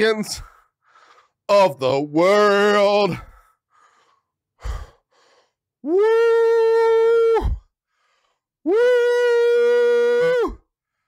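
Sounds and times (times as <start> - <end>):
man breathing out heavily: 0.4 - 1.5, 3.2 - 5.6, 7.8 - 8.6
man shouting woo: 5.9 - 7.6, 8.7 - 10.6.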